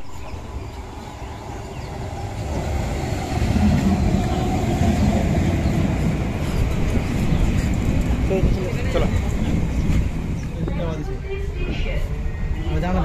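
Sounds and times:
train wheels rumbling on rails: 0.0s - 13.0s.

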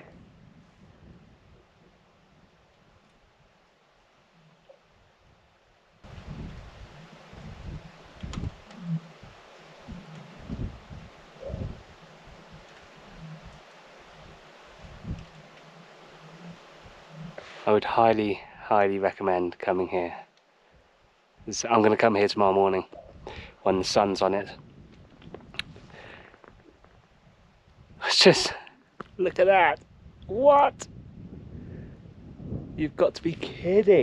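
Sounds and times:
lake ice groaning and booming: 6.1s - 18.3s.

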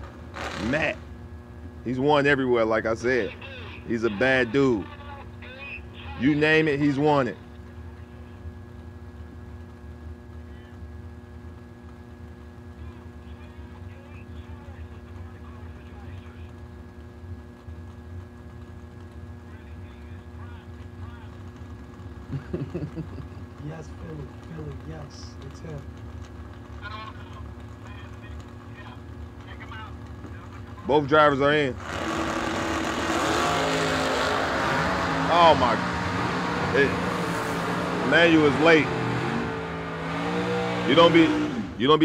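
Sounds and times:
race car engines idling: 0.0s - 42.0s.

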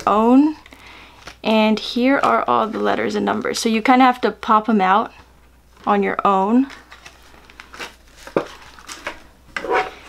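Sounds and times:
plastic sheet crinkling: 0.0s - 4.2s, 5.1s - 10.0s.

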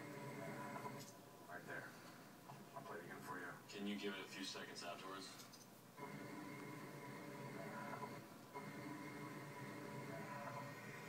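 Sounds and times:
faint television background music: 0.0s - 11.0s.

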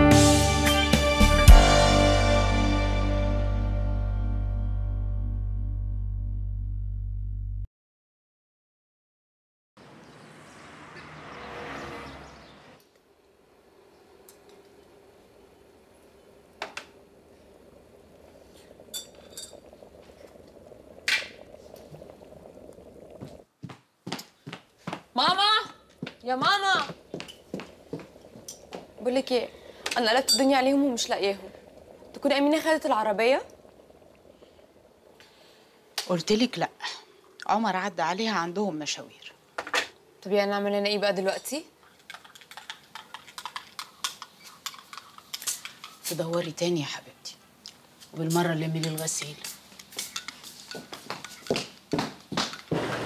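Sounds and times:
electric kettle heating water: 12.8s - 23.5s, 25.2s - 41.7s, 44.6s - 53.0s
kitchenware clinking: 30.0s - 30.6s, 48.8s - 51.6s.

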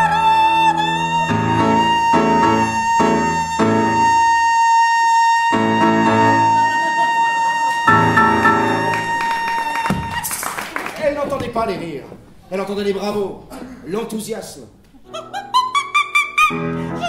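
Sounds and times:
grand piano chords: 7.9s - 9.5s
soprano holding high note: 7.9s - 9.7s.

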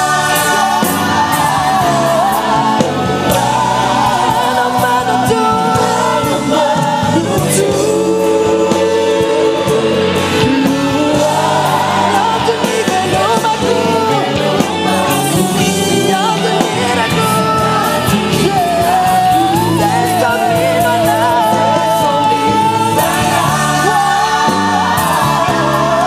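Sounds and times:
choir singing gospel song: 0.0s - 26.0s
instrumental accompaniment: 0.0s - 26.0s.

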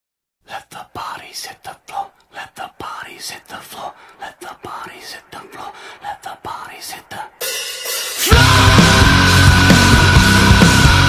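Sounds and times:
person whispering: 0.4s - 7.4s.

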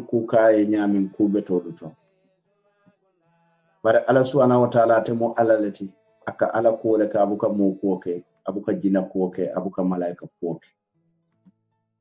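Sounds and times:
man speaking: 0.0s - 1.9s, 3.9s - 10.6s.

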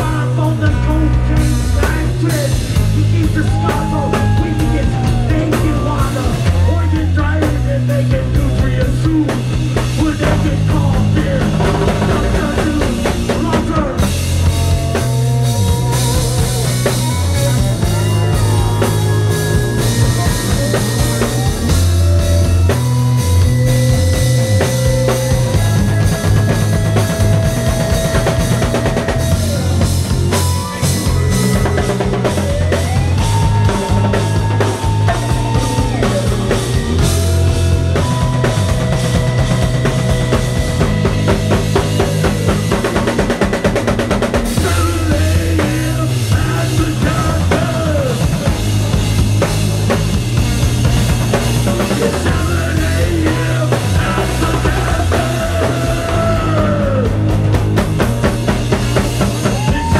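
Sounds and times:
drum kit groove: 0.0s - 59.9s
electric bass line: 0.0s - 59.9s.

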